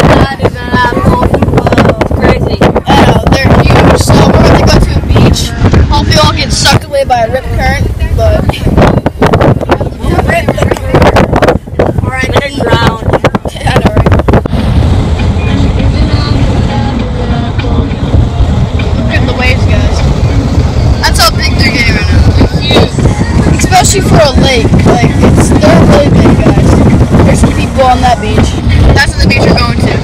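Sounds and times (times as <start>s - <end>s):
car driving rumble: 0.0s - 30.0s
voices: 0.0s - 30.0s
wind buffeting microphone: 0.0s - 30.0s.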